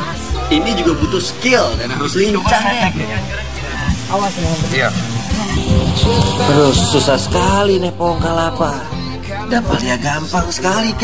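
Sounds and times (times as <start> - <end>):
background music: 0.0 - 11.0
man speaking: 5.8 - 8.0.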